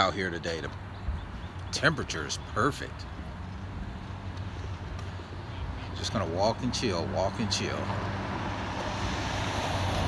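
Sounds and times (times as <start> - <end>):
car tyres rushing: 7.4 - 10.0.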